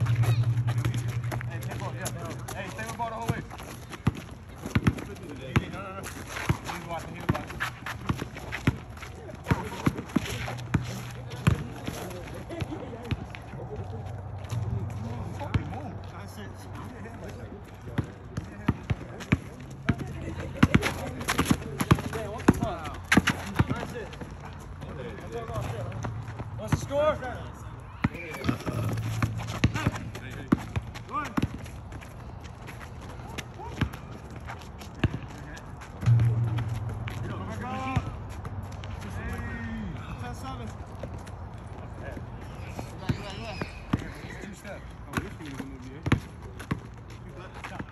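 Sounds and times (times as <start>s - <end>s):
basketball bouncing on asphalt: 0.0s - 13.5s, 14.6s - 16.3s, 17.2s - 24.5s, 25.4s - 39.8s, 40.6s - 44.2s, 45.1s - 47.9s
players' voices: 0.0s - 47.9s.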